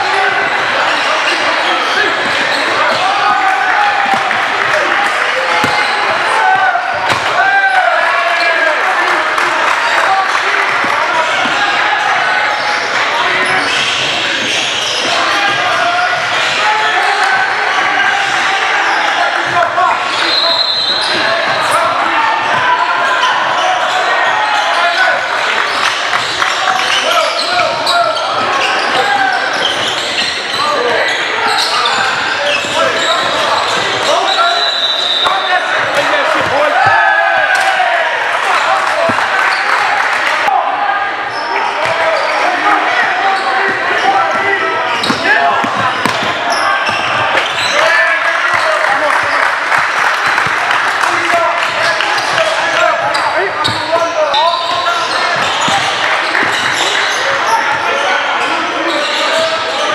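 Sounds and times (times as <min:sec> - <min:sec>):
voices of players and spectators: 0:00.0 - 0:59.9.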